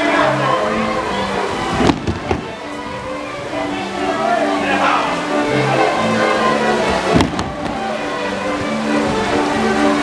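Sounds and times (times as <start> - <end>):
folk dance music: 0.0 - 10.0.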